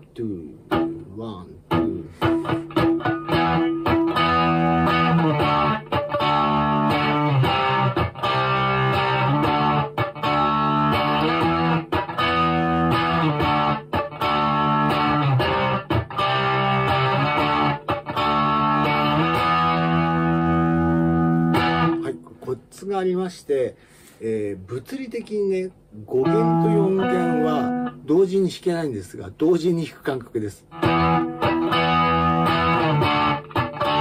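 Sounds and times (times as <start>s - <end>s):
electric guitar power chords: 0.7s - 1.0s, 1.6s - 22.4s, 26.2s - 28.1s, 30.7s - 34.0s.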